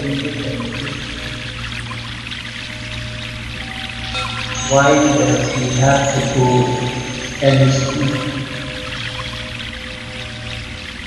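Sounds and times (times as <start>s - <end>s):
background music with low drone: 0.0s - 11.0s
running water hiss: 0.0s - 11.0s.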